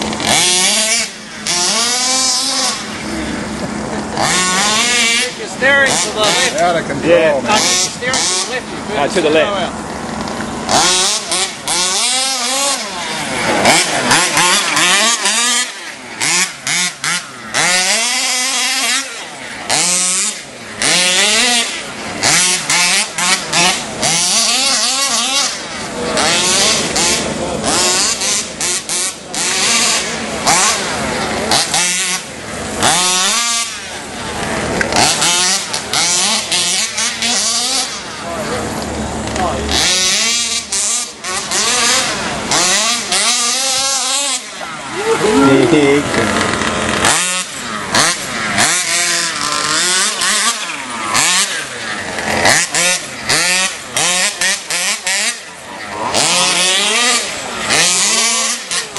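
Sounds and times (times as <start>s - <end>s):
small two-stroke engines revving: 0.0s - 58.9s.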